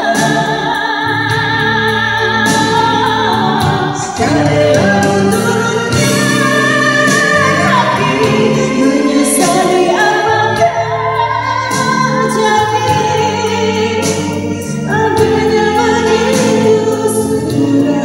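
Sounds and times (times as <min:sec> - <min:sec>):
karaoke backing track: 0:00.0 - 0:18.0
woman singing pop ballad: 0:00.0 - 0:18.0.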